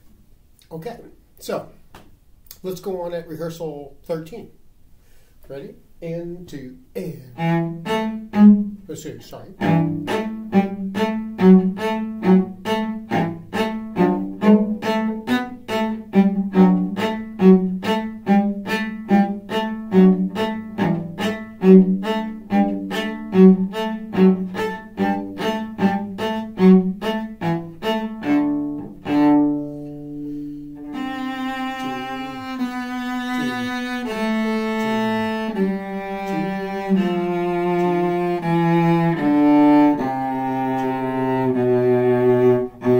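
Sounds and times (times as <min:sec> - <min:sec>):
cello playing a melody: 0:06.1 - 0:42.9.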